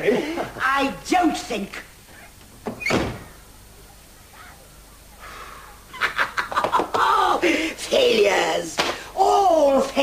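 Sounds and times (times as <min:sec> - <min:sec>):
door shutting with thud: 0:02.6 - 0:03.4.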